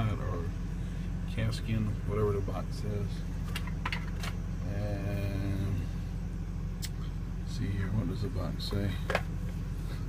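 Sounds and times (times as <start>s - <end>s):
vehicle cab hum: 0.0s - 10.0s.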